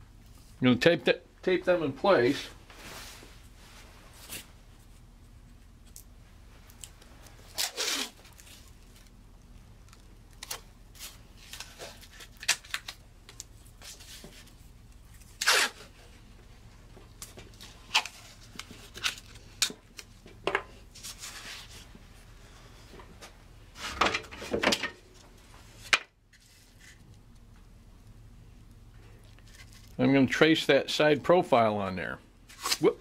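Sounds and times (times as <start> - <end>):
tape ripping off roll: 7.4 - 8.7, 15.4 - 16.0.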